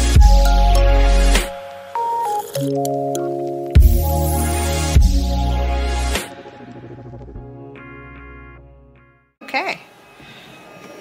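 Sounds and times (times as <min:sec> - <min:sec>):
background music: 0:00.0 - 0:09.3.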